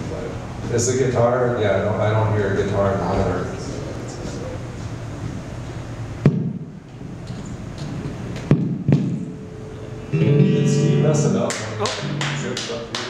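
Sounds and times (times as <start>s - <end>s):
guitar chord strummed: 9.3s - 13.0s.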